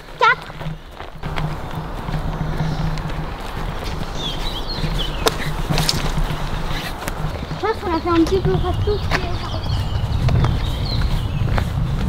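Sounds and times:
microphone rushing noise: 0:00.0 - 0:12.0
quick footsteps on grass: 0:00.0 - 0:12.0.

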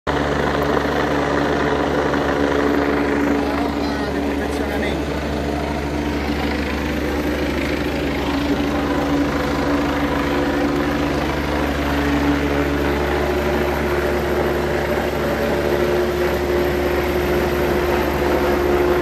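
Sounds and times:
helicopter flying overhead: 0:00.1 - 0:19.0.

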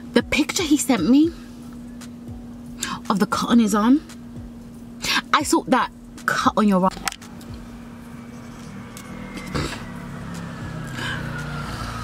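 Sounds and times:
car interior low hum: 0:00.0 - 0:12.0.

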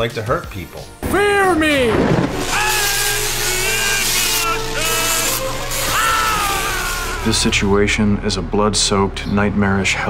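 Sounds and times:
loud harsh noise: 0:01.0 - 0:08.0.

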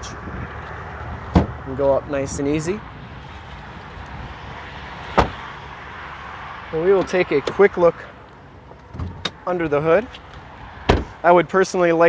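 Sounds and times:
car door shutting thud: 0:01.3 - 0:01.6, 0:05.1 - 0:05.4, 0:10.9 - 0:11.2.

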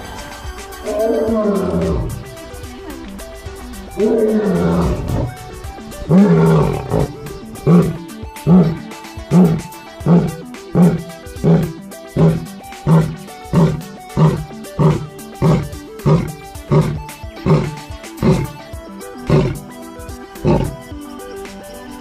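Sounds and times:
faint background music: 0:00.0 - 0:22.0
lion roaring: 0:00.8 - 0:02.4, 0:03.9 - 0:18.6, 0:19.2 - 0:19.8, 0:20.4 - 0:20.8
lion grunts: 0:00.8 - 0:03.0, 0:03.9 - 0:19.8, 0:20.4 - 0:20.9.

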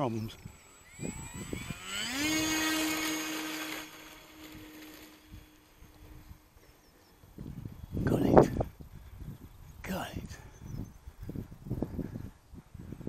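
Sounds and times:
model plane motor whine: 0:00.1 - 0:07.2.

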